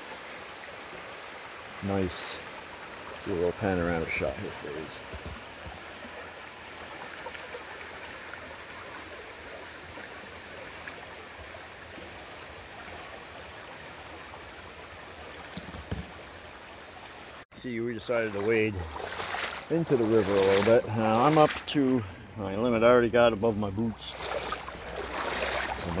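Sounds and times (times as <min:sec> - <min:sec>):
water rushing over rocks: 0:00.0 - 0:16.6, 0:18.0 - 0:22.1, 0:24.1 - 0:26.0.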